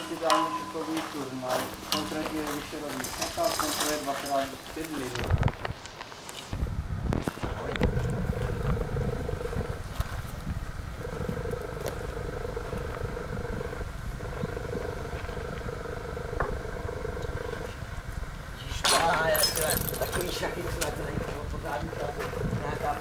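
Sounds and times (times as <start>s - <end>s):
low rumble: 6.6s - 18.6s
small motor droning: 7.5s - 18.0s.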